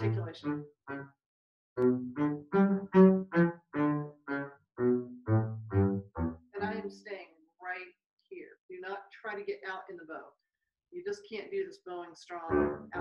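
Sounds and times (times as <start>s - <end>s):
bowed double bass notes: 0.0s - 1.0s, 1.8s - 6.9s, 12.5s - 13.0s.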